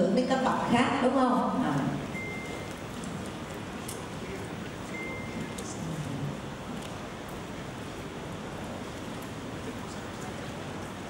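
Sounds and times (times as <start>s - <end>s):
hall room noise with audience: 0.0s - 11.0s.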